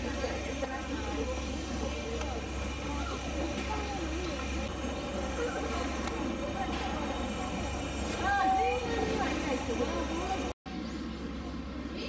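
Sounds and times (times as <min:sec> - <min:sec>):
people chattering: 0:00.0 - 0:12.0
steady low hum: 0:00.0 - 0:12.0.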